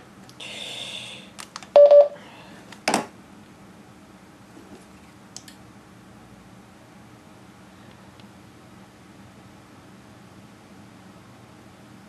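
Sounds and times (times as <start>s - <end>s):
short loud beep: 1.8s - 2.2s.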